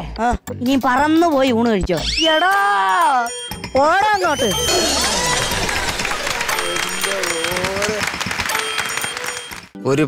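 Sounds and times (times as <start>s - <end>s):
audience clapping: 4.4s - 9.8s.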